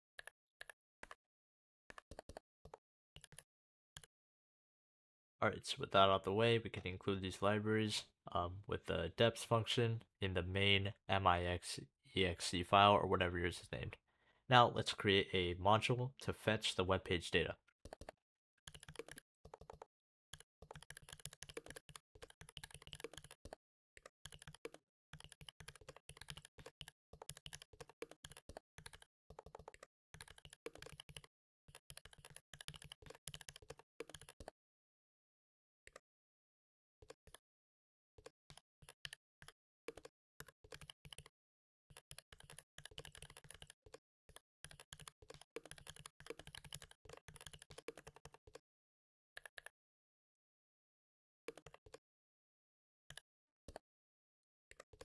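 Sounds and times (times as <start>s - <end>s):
computer keyboard typing: 1.9s - 3.4s, 17.8s - 34.5s, 38.2s - 41.3s, 41.9s - 48.6s.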